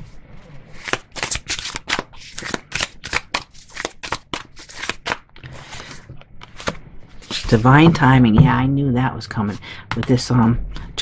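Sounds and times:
cards being shuffled by hand: 0.7 - 7.7.

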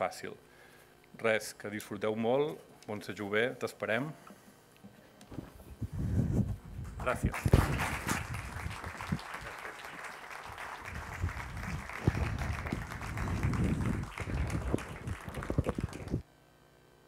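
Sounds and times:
audience applauding: 7.0 - 16.2.

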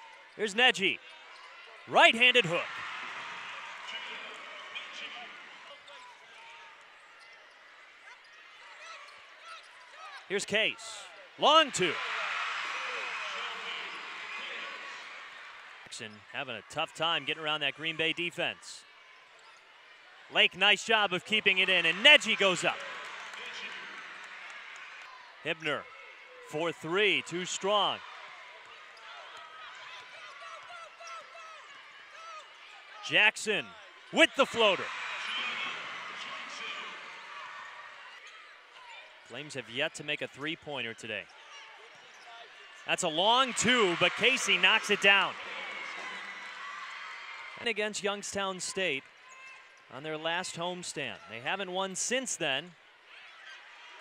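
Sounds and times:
faint voices in an arena: 0.0 - 54.0.

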